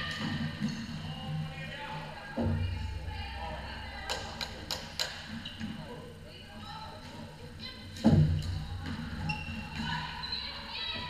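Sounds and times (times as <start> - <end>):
voices in a hall: 0.0 - 11.0.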